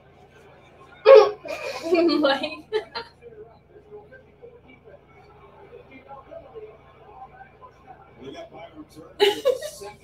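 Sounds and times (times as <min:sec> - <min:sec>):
woman laughing: 0:01.1 - 0:03.1, 0:09.2 - 0:10.0.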